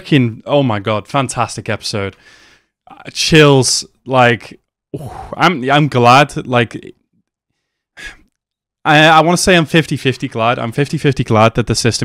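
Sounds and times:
man speaking: 0.0 - 2.2, 2.9 - 7.0, 8.9 - 12.0
man breathing: 2.2 - 2.8, 7.5 - 8.3.

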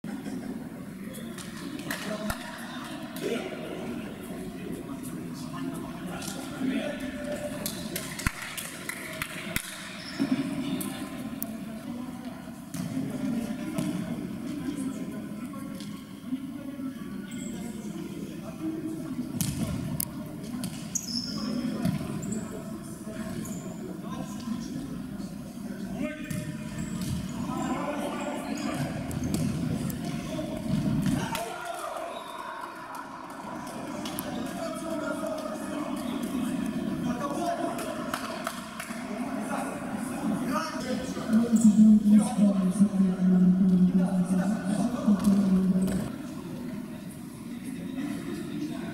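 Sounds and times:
shouts and chatter: 31.2 - 35.8.

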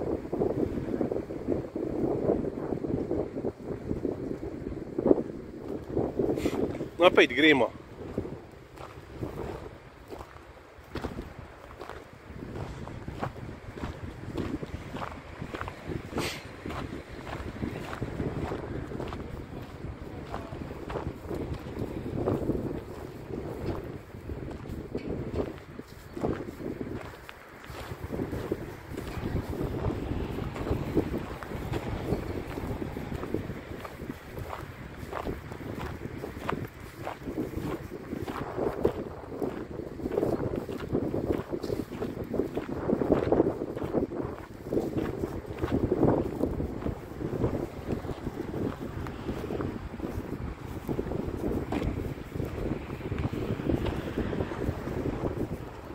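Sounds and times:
footsteps in dry grass: 0.0 - 55.9
wind buffeting microphone: 0.0 - 55.9.

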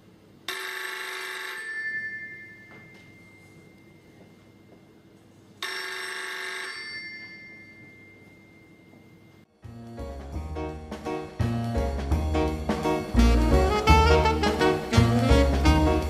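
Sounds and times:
bell telephone ringing: 0.5 - 4.1, 5.6 - 9.4.

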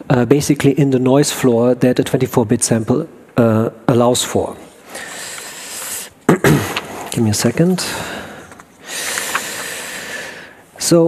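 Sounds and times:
man breathing into microphone: 4.8 - 6.2, 7.8 - 10.7.

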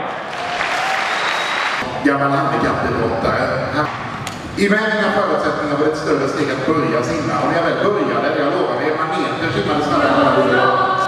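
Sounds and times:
audience applauding: 0.0 - 1.8.

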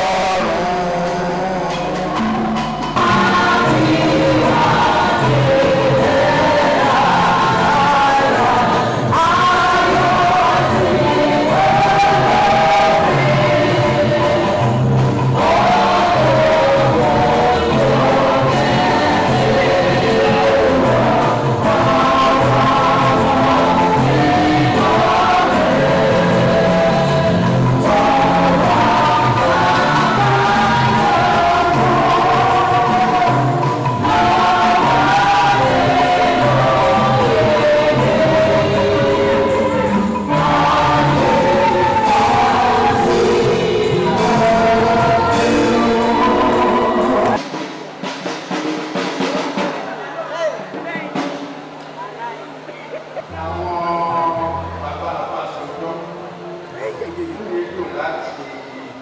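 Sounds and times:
instrumental backing with bass line: 0.0 - 55.0
group singing church song: 0.0 - 59.0.

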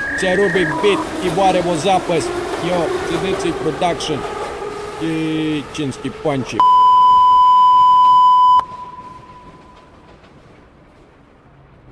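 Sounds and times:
loud electronic beep: 0.0 - 1.2, 6.6 - 9.5.

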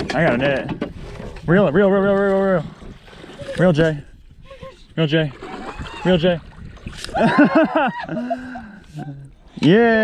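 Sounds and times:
woman laughing: 7.1 - 9.3.

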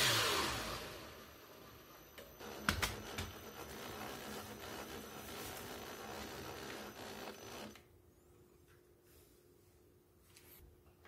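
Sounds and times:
cordless drill running: 0.0 - 7.9.

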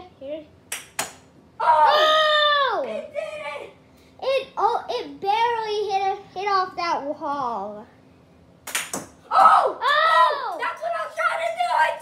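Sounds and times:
boy yelling excitedly: 1.6 - 3.8, 9.3 - 12.0.

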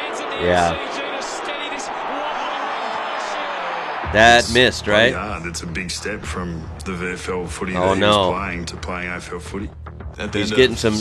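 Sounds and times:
stadium crowd noise: 0.0 - 5.2.

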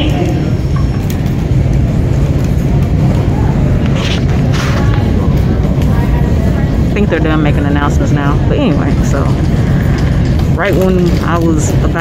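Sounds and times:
low rumble of terminal noise: 0.0 - 12.0.

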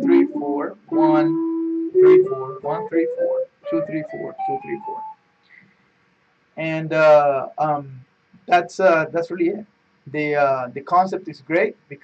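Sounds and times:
electric guitar picked notes: 0.0 - 5.1.

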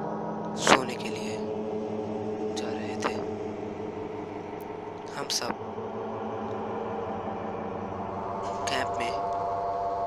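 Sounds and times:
low drone of sustained tones: 0.0 - 10.0.

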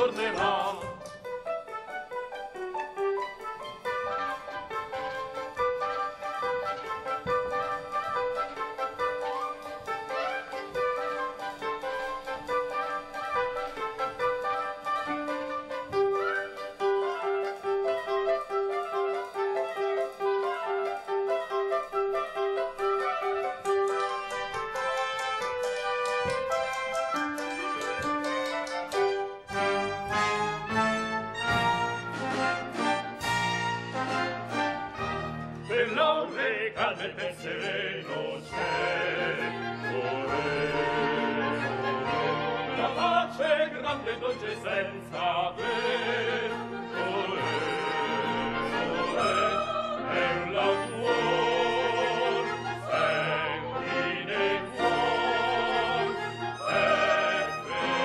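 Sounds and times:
lively instrumental dance music: 0.0 - 51.5.

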